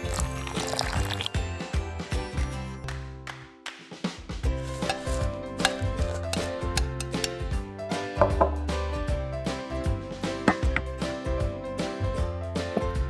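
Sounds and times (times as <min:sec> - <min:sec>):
background music: 0:00.0 - 0:13.0
metal spoon tapping glass bowl: 0:04.8 - 0:07.4.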